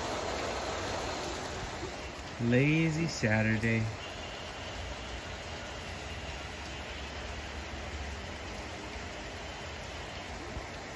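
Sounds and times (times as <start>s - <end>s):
steady rain hiss: 0.0s - 10.9s.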